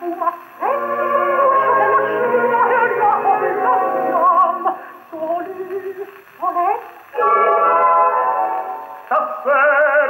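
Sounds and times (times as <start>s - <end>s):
gramophone record of operatic singing: 0.0s - 10.0s.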